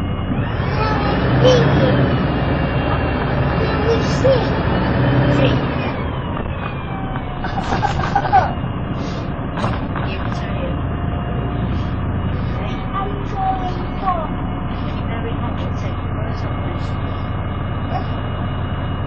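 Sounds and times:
bus body rattles and clicks: 0:00.0 - 0:19.0
bus diesel engine: 0:00.0 - 0:19.0
passengers' voices murmuring: 0:00.7 - 0:06.3, 0:07.3 - 0:18.3.

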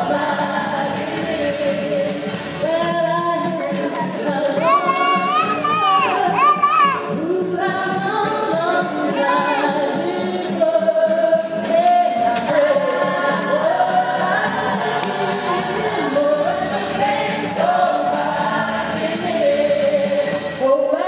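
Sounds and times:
gospel choir singing: 0:00.0 - 0:21.0
woman singing lead: 0:00.0 - 0:21.0.

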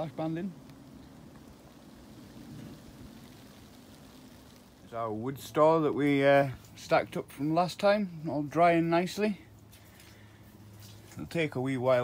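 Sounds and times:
faint outdoor background hiss: 0:00.0 - 0:12.0.

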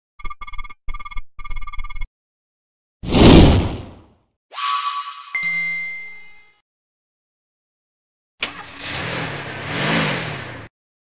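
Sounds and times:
electronic ringing tone: 0:00.2 - 0:02.1, 0:05.3 - 0:06.6.

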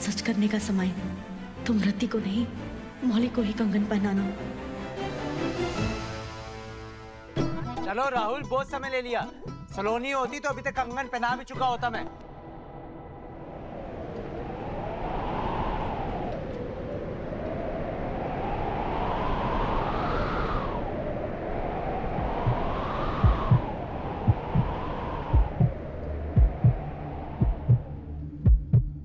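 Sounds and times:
wavering suspense drone: 0:12.1 - 0:15.0
low heartbeat-like thumps: 0:22.2 - 0:29.0.

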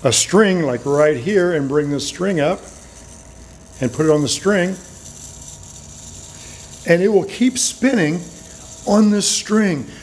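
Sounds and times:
spinning gyroscope whir: 0:00.0 - 0:10.0.

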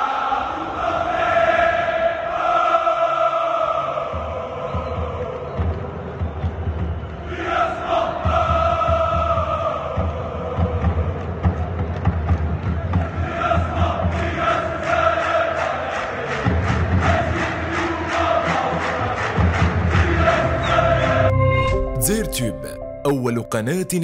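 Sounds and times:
crowd chanting in unison: 0:00.0 - 0:21.3.

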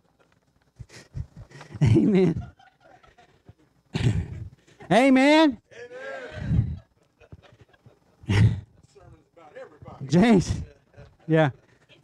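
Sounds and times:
man laughing: 0:00.8 - 0:04.6, 0:06.4 - 0:08.8, 0:10.1 - 0:12.0.

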